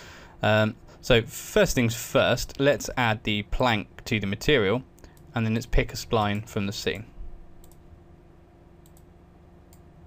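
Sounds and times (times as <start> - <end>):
low room hum: 0.0 - 10.0
computer mouse clicks: 7.6 - 7.8, 8.8 - 9.1, 9.7 - 9.9.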